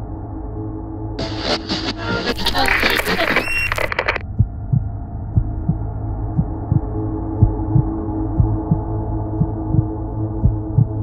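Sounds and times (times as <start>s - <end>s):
steady low drone: 0.0s - 11.0s
heartbeat double thump: 4.2s - 11.0s.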